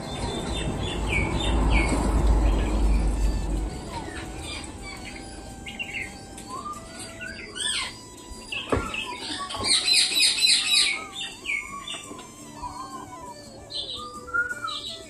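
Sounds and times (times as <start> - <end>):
birds chirping: 0.0 - 15.0.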